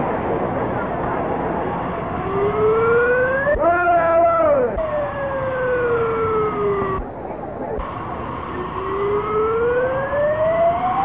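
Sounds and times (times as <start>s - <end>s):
siren-like wail: 1.8s - 7.1s, 7.8s - 11.0s.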